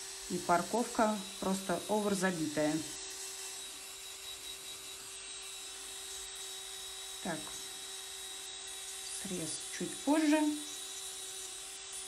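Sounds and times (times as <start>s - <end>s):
electric nail drill whining: 0.0s - 12.0s.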